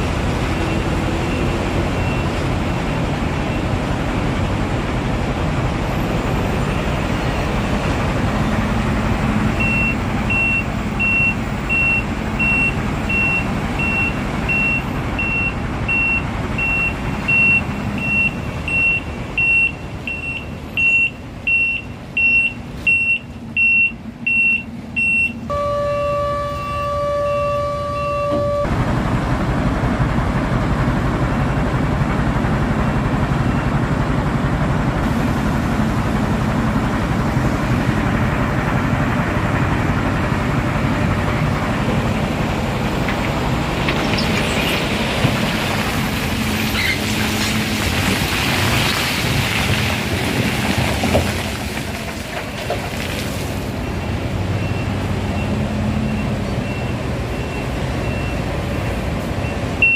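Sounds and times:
reversing alarm beeping: 9.6s - 28.7s, 53.8s - 59.9s
truck engine running: 22.1s - 59.9s
truck horn: 25.5s - 28.7s.

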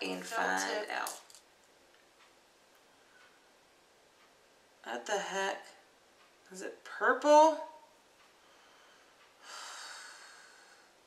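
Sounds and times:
person breathing out: 8.6s - 11.0s.

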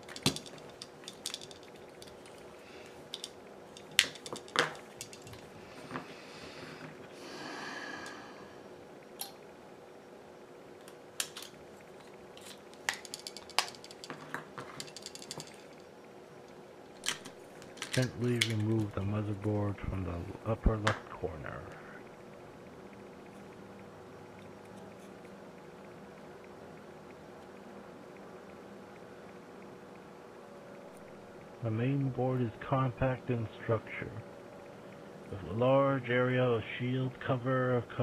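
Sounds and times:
small tools clicking on plastic: 12.4s - 15.8s.

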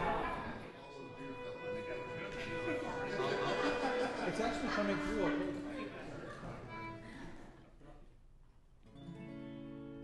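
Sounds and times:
people talking: 0.0s - 7.2s
fiddle long held notes: 0.9s - 5.8s, 6.6s - 7.2s.

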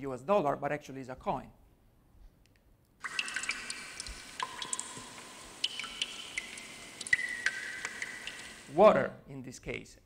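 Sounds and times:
water drops dripping reverberant: 3.0s - 9.0s.

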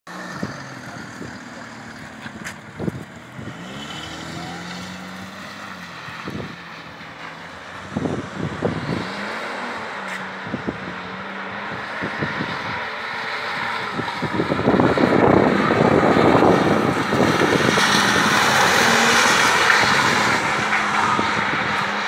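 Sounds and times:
diesel engine at high revs: 0.1s - 22.0s.

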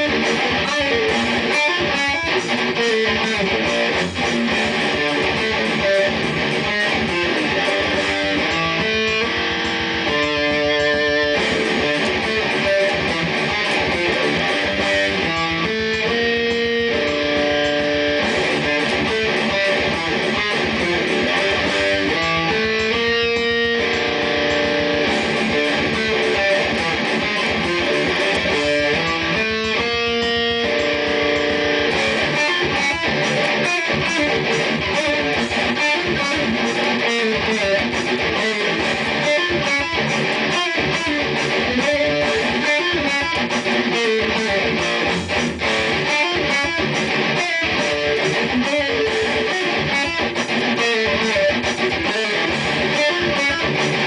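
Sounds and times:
distorted electric guitar riffs: 0.0s - 54.0s
drum machine beat: 0.0s - 54.0s.

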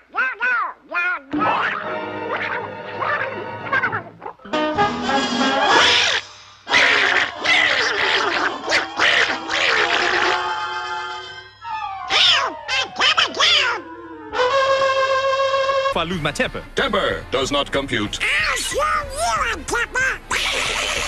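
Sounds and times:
cartoon duck squawking quacks: 0.0s - 4.4s, 5.6s - 10.5s, 12.1s - 13.8s, 18.2s - 21.0s
cartoon orchestral music: 1.3s - 21.0s.

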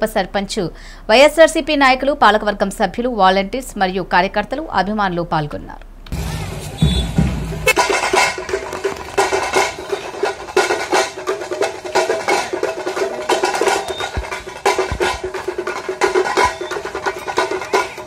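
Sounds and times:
fast dense drum and percussion: 6.1s - 18.0s.

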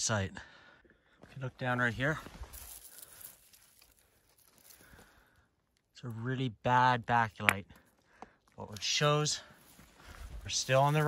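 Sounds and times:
rustling and scraping of dry soil: 1.2s - 6.4s, 7.0s - 11.0s.

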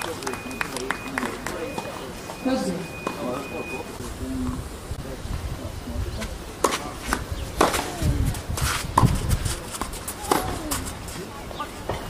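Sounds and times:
tennis ball bouncing: 6.6s - 8.0s, 9.0s - 11.0s
tennis racket striking ball: 6.6s - 8.0s, 8.6s - 10.9s.

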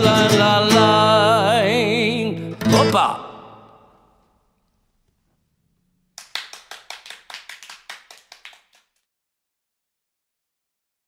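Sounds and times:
hand clapping: 6.2s - 9.0s.

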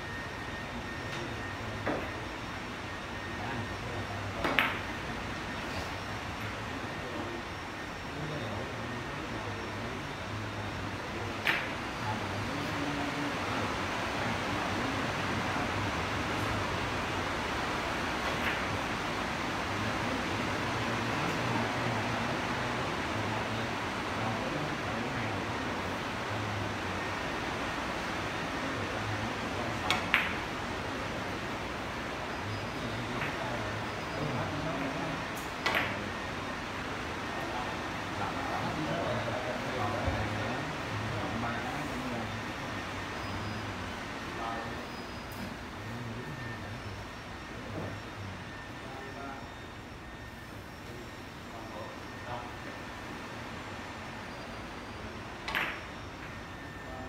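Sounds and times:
room hum: 0.0s - 57.0s
billiard balls clicking: 55.4s - 56.0s.

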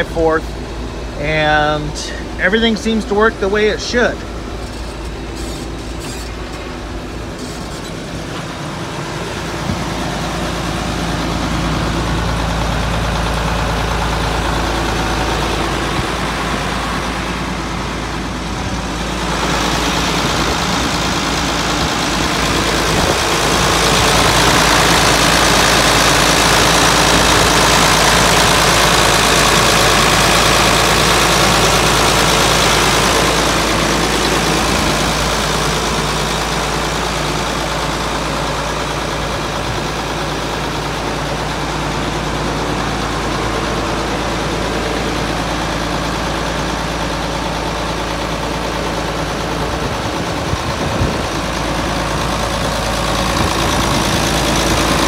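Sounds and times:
diesel engine running: 0.0s - 55.0s.

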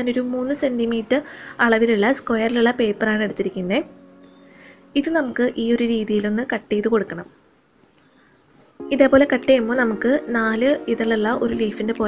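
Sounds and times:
woman speaking: 0.0s - 3.9s, 4.9s - 7.4s, 8.8s - 12.0s.

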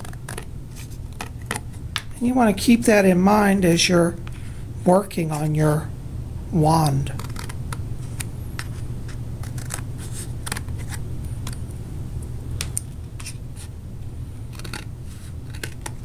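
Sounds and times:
steady low hum: 0.0s - 16.0s
scissors snipping cardboard: 14.5s - 14.9s.

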